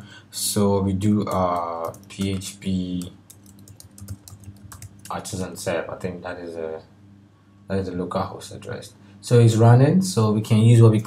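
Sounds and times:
computer keyboard typing: 1.3 - 5.3.

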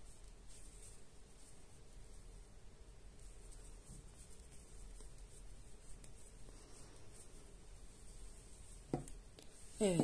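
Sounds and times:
low room hum: 0.0 - 10.0
crochet hook scratching yarn: 3.2 - 10.0.

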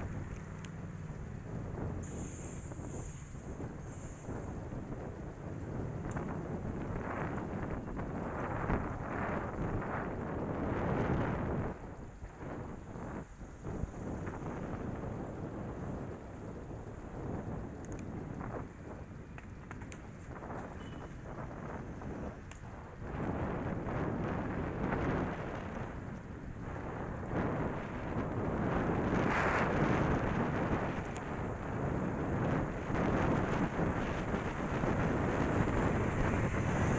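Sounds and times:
road traffic: 0.0 - 36.9
wind buffeting microphone: 0.0 - 36.9.

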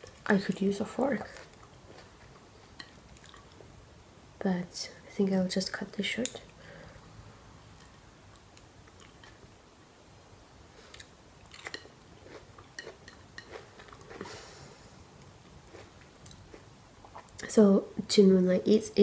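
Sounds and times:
soft rush of noise: 0.0 - 19.0
person chewing noodles: 1.4 - 3.7, 10.8 - 14.9, 15.6 - 17.4.

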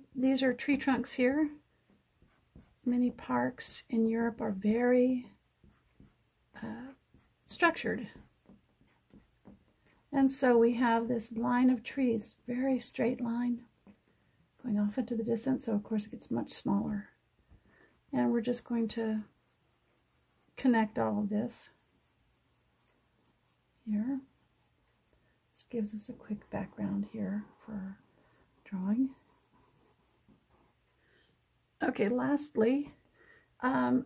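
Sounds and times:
marker scratching on paper: 0.2 - 12.0, 17.5 - 30.9.

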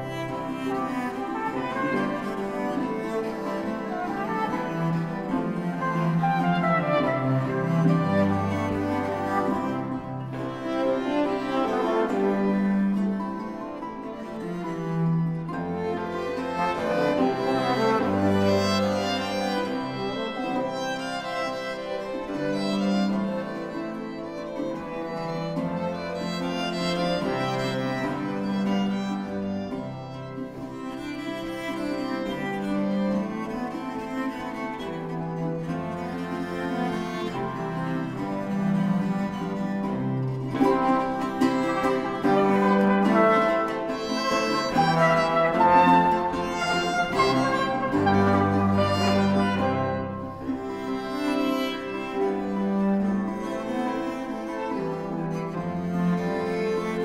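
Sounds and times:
baroque string ensemble: 0.0 - 57.0.

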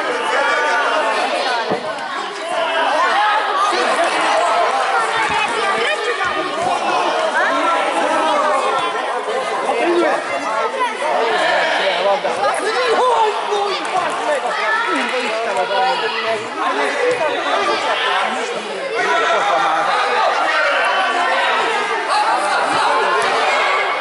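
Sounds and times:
babble of many voices echoing: 0.0 - 24.0.

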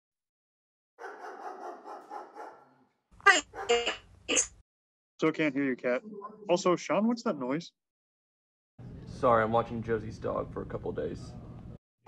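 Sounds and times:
dog barking: 1.0 - 4.0.

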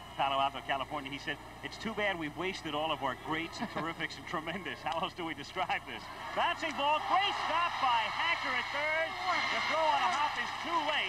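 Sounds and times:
man talking: 0.2 - 11.0.

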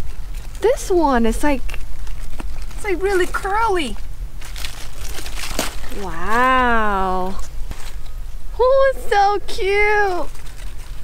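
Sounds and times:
leaves rustling and crinkling: 0.0 - 11.0
sharp leaf crackles: 0.0 - 11.0.

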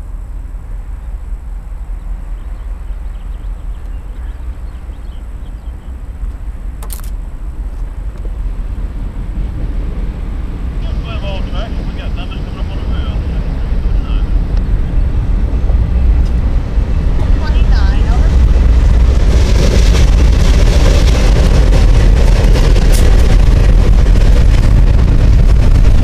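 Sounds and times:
locomotive engine rumble: 0.0 - 26.0.

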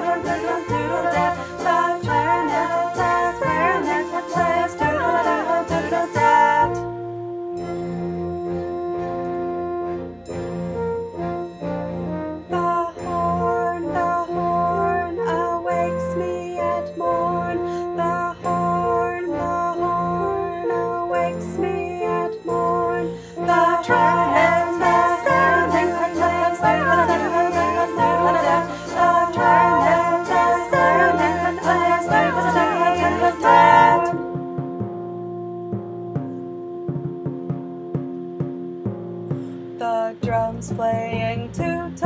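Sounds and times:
multi-part singing: 0.0 - 6.9, 12.6 - 34.5
brass horn-call melody: 0.0 - 40.1.

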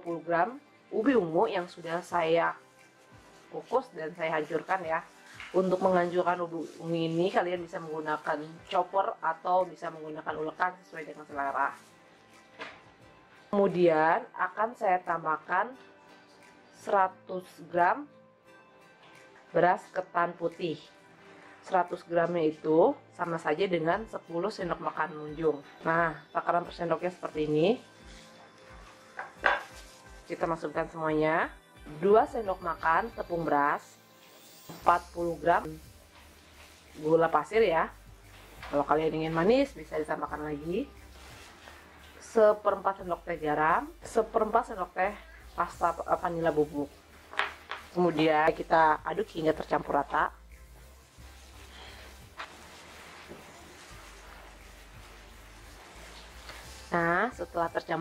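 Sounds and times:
gloved hand mixing in glass bowl: 0.4 - 8.8, 27.0 - 31.0, 32.0 - 58.0.

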